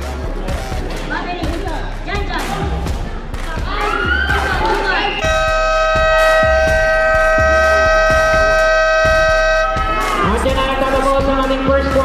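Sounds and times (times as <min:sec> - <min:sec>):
basketball buzzer blast: 0:05.2 - 0:10.0.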